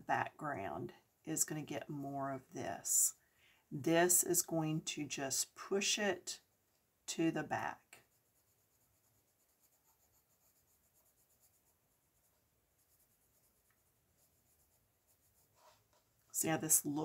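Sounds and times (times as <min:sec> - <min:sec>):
pencil scratching on paper: 0:08.0 - 0:16.2.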